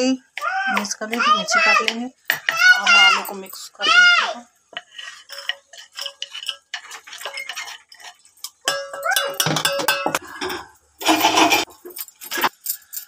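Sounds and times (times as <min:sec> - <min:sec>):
spoon clinking steel dishes: 0:04.8 - 0:13.0.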